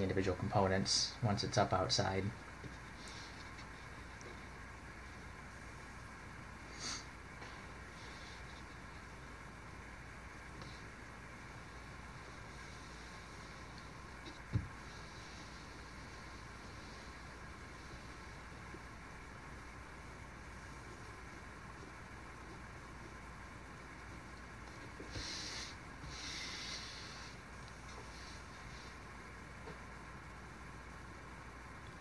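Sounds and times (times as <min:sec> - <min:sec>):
low background hum: 0:00.0 - 0:32.0.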